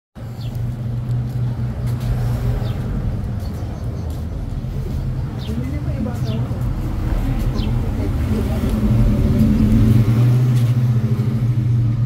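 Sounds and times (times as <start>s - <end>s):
vehicle engine humming: 0.2s - 12.0s.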